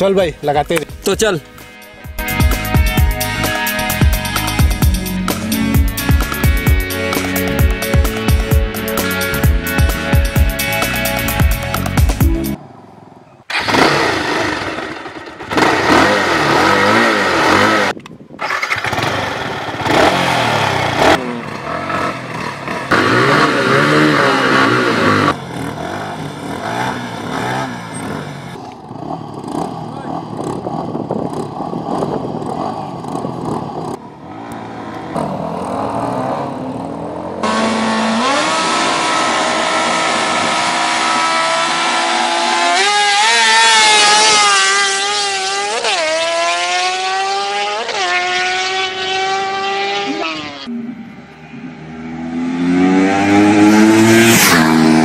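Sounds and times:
motorcycle engines revving: 12.5 - 55.0
motorcycle accelerating away: 12.6 - 55.0.

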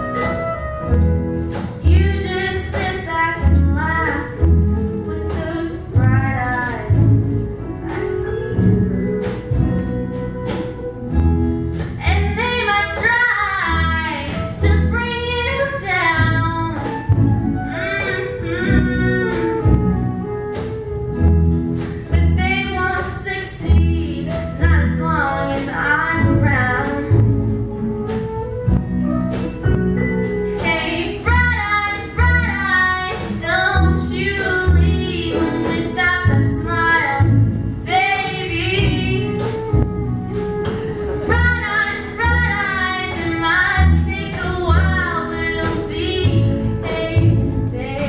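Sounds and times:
acoustic guitar: 0.0 - 48.0
deep bass notes: 0.0 - 48.0
orchestra playing: 0.0 - 48.0
woman singing: 1.8 - 10.2, 12.0 - 19.9, 22.1 - 27.6, 30.5 - 39.7, 41.2 - 48.0.

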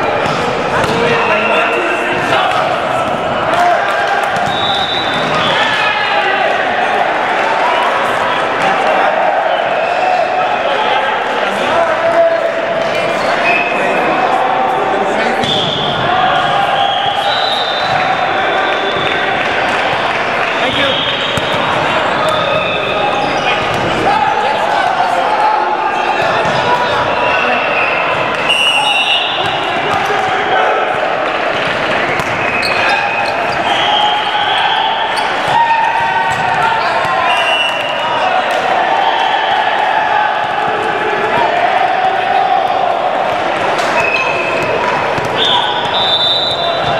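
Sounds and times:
volleyballs hit and bounced: 0.0 - 5.8, 17.8 - 24.7, 26.1 - 27.3, 28.0 - 34.6, 35.2 - 38.7, 42.6 - 46.9
players' voices and calls: 0.0 - 46.9
ball being hit and bouncing: 0.2 - 1.2, 4.3 - 4.6, 21.3 - 22.5, 31.5 - 32.8, 43.3 - 46.0
sneakers squeaking: 4.4 - 5.9, 15.4 - 19.2, 20.6 - 24.1, 31.4 - 38.1, 43.3 - 46.9.

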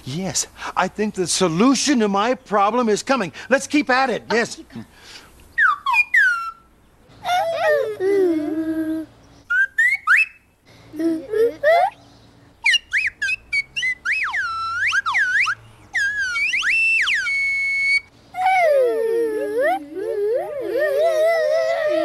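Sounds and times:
vocal slide-whistle swoops: 9.5 - 10.4, 12.6 - 18.6.

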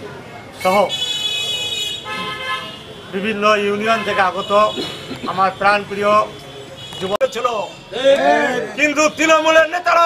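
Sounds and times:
high-pitched vehicle horn: 0.9 - 3.0.

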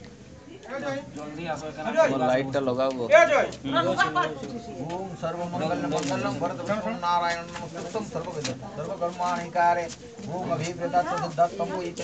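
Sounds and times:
people talking over one another: 0.3 - 12.0.

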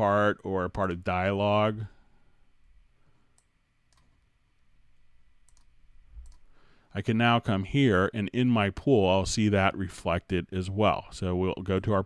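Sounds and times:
low room hum: 0.0 - 12.0
computer mouse clicks: 3.3 - 4.2, 5.4 - 6.5.

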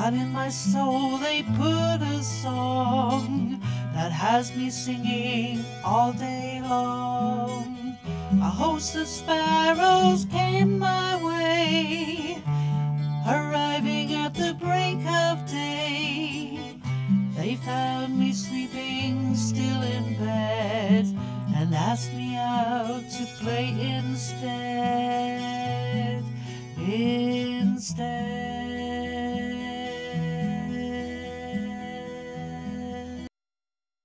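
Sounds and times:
woman singing folk song: 0.0 - 33.3
acoustic guitar: 0.0 - 33.4.

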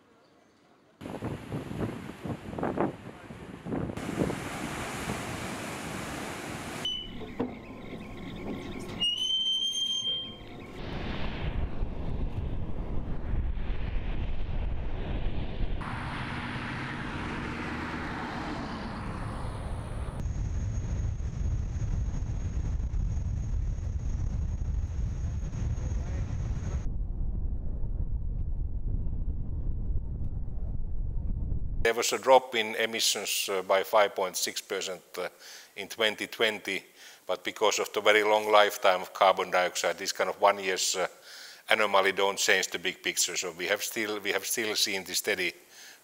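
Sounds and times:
wind noise: 1.0 - 9.2, 10.2 - 31.9
waves surging against concrete: 4.0 - 6.9
high whistle-like tone: 6.8 - 7.3, 8.8 - 10.8
low rumble: 10.2 - 31.9.

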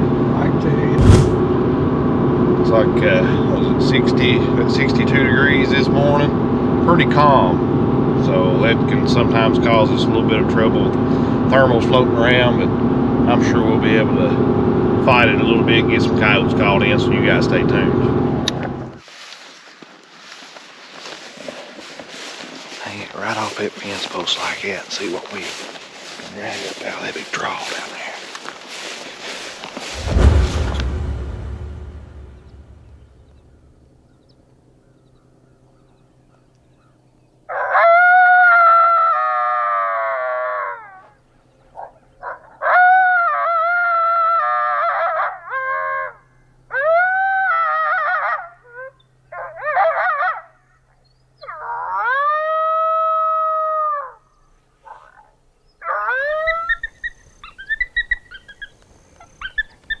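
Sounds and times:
coyote howls through speaker: 37.5 - 41.1, 42.2 - 50.6, 51.4 - 54.2, 55.8 - 58.6
coyote yips: 42.2 - 50.5, 51.4 - 54.2, 54.9 - 60.0.

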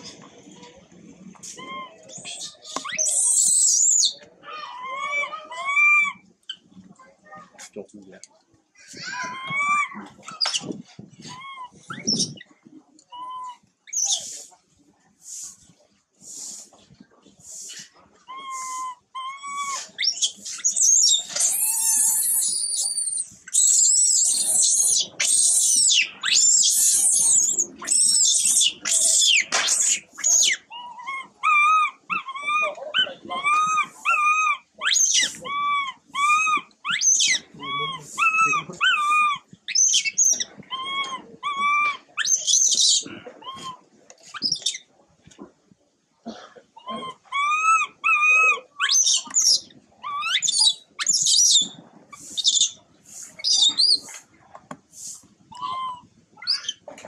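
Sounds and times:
baby monkey crying: 8.9 - 10.7, 18.3 - 43.8, 46.8 - 52.7, 55.5 - 56.9.

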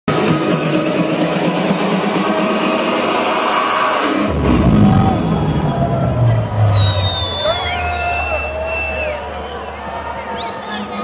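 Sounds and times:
loud electronic dance music: 0.0 - 10.0.

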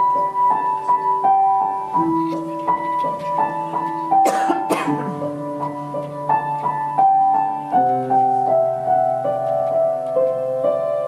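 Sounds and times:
grand piano broken chords: 0.0 - 11.0
person coughing: 4.2 - 5.2.

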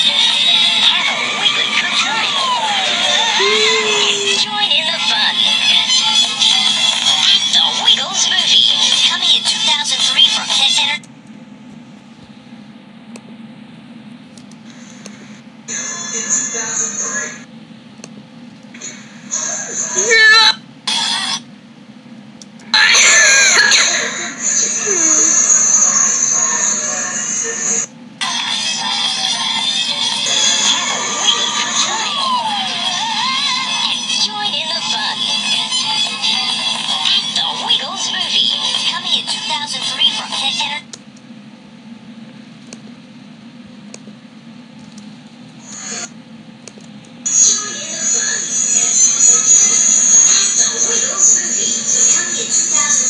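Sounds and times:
voices through laptop speakers: 0.0 - 11.1, 18.8 - 21.4, 22.6 - 41.3, 45.6 - 46.1, 46.7 - 53.0.

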